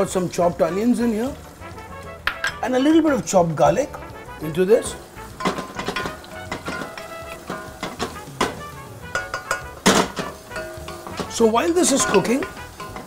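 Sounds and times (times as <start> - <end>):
background music: 0.0 - 13.0
wooden spoon stirring onions in oil: 0.0 - 13.0
spoon knocking against pan: 2.2 - 2.6, 5.4 - 13.0.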